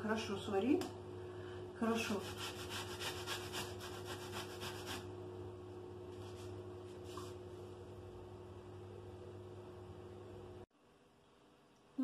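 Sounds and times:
carrot grating on metal grater: 2.1 - 5.0.

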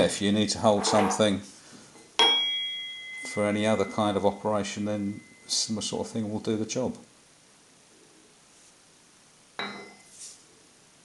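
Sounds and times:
soft brushing sound: 8.5 - 8.9, 10.0 - 10.6.

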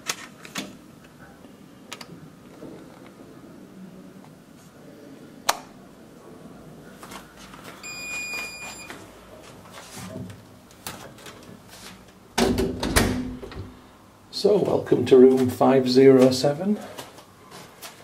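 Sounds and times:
high electronic beep: 7.8 - 8.9.

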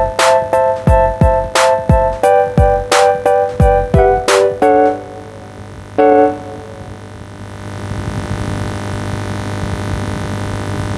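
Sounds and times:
keyboard chord: 0.0 - 7.4
low electrical hum with hiss: 0.0 - 10.9.

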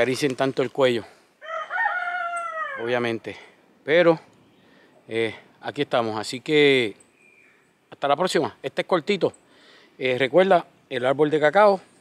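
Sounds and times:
rooster crowing: 1.4 - 3.0.

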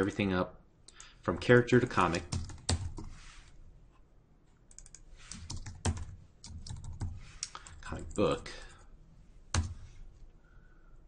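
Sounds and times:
typing on computer keyboard: 2.3 - 3.1, 4.7 - 8.4.

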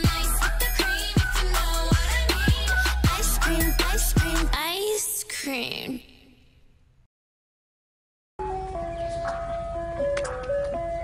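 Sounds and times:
ice cream truck chime jingle: 8.4 - 11.0.

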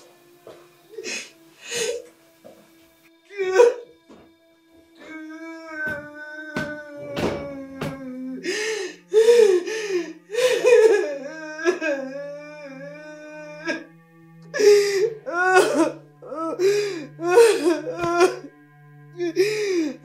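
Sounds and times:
background music with held notes: 0.0 - 20.0
woman laughing and sobbing: 10.3 - 12.4.

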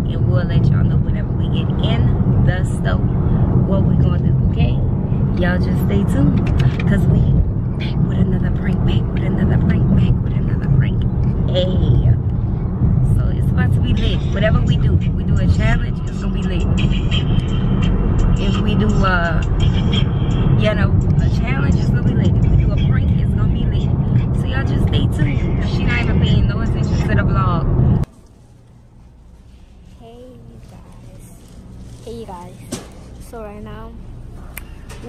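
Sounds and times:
voices: 0.0 - 12.3, 13.0 - 27.9, 30.0 - 35.0
road and engine rumble: 0.0 - 35.0
music: 14.5 - 22.7.

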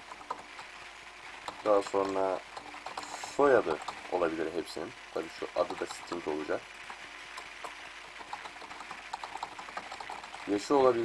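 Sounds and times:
faint steady hiss: 0.0 - 11.0
keyboard keystrokes: 8.2 - 10.5.

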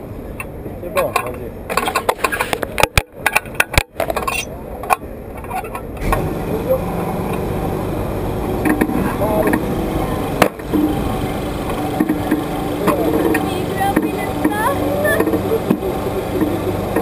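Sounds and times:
ride low rumble: 0.0 - 17.0
riders laughing and talking: 6.4 - 17.0.

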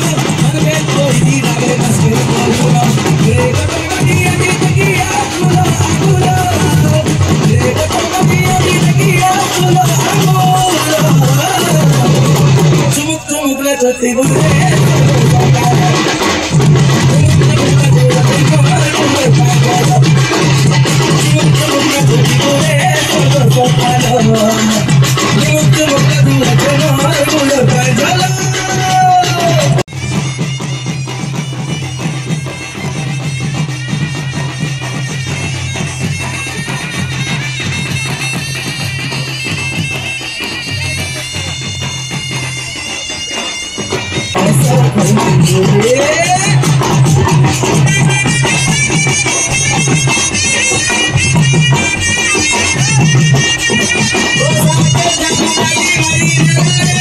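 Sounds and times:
barrel drum beating: 0.0 - 13.2, 14.2 - 57.0
wind instrument melody: 0.0 - 57.0.

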